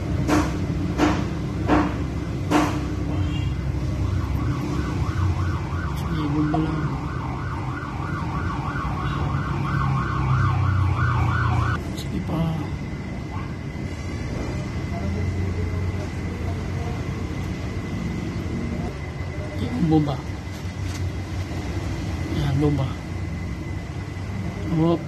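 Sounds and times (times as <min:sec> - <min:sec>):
electronic siren warbling: 0:03.6 - 0:11.8.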